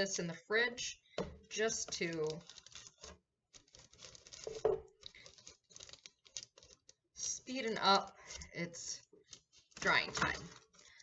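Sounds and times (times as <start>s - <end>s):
wax paper rustling: 1.8s - 11.0s.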